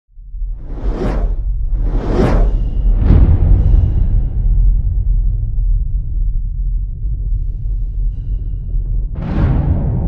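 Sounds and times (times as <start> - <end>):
cinematic whooshes: 0.5 - 5.0.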